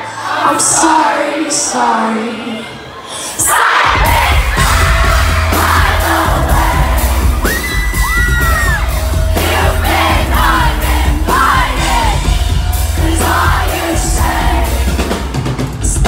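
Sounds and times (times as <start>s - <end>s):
crowd singing and yelling: 0.0s - 16.0s
live pop concert music: 0.0s - 16.0s
person singing: 9.3s - 16.0s.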